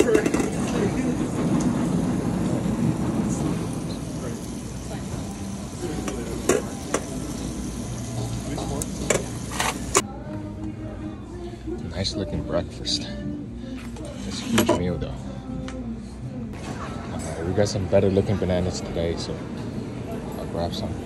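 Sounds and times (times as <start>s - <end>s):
metal ladle scraping pot: 0.0s - 0.9s
busy dining hall background: 0.0s - 21.0s.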